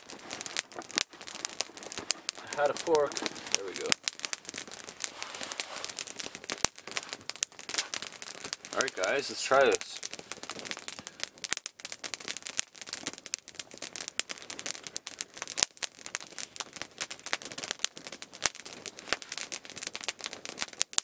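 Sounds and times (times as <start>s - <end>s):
campfire crackling and popping: 0.0s - 21.0s.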